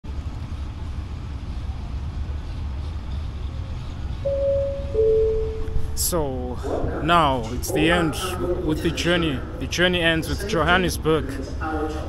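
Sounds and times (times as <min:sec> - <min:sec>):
moving walkway rumble: 0:00.1 - 0:08.6
two-note electronic chime: 0:04.3 - 0:06.0.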